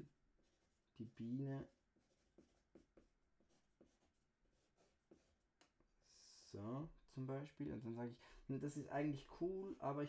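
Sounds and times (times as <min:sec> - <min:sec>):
pencil scratching on paper: 0:00.0 - 0:05.5.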